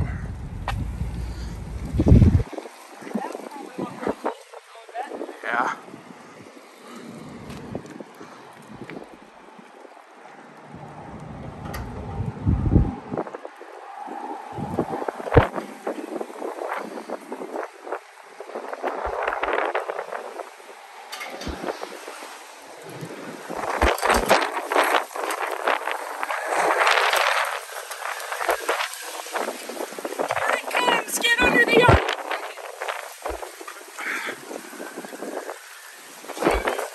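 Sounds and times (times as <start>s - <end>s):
tree leaves rustling: 0.0s - 36.9s
wind buffeting microphone: 0.0s - 36.9s.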